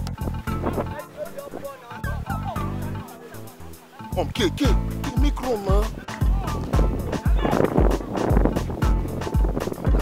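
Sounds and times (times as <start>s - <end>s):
music with deep bass beat: 0.0s - 10.0s.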